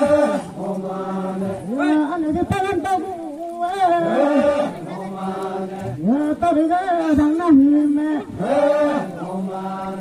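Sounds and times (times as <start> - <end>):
group chanting long held notes: 0.0 - 10.0.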